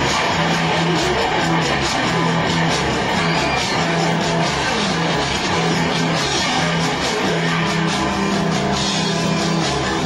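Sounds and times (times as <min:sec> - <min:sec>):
rock music with electric guitar: 0:00.0 - 0:10.0.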